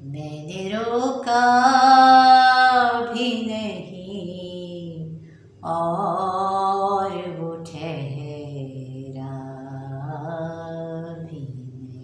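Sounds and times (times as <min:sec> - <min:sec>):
woman singing: 0:00.0 - 0:12.0.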